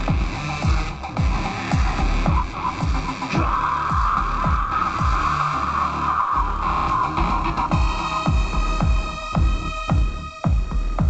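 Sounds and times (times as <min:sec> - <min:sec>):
deep kick drums: 0:00.0 - 0:05.4, 0:06.5 - 0:11.0
harsh hissing synth noise: 0:00.0 - 0:11.0.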